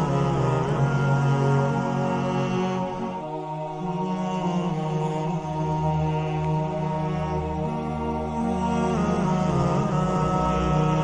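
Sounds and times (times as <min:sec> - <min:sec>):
slow low chanting: 0:00.0 - 0:11.0.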